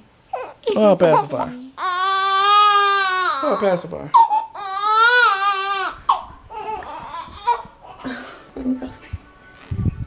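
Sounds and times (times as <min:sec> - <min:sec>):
newborn baby crying: 0:00.3 - 0:08.2.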